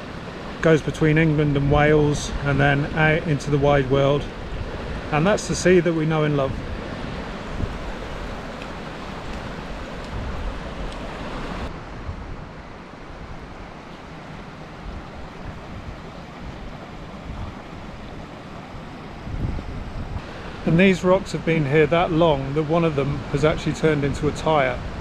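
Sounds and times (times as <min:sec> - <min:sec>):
wind buffeting microphone: 0:00.9 - 0:25.0
rushing water hiss: 0:07.3 - 0:11.7, 0:20.1 - 0:25.0.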